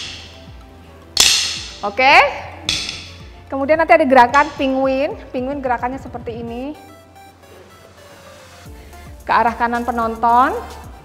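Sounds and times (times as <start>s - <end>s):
plastic drumsticks clacking: 1.2s - 1.8s, 2.7s - 3.2s.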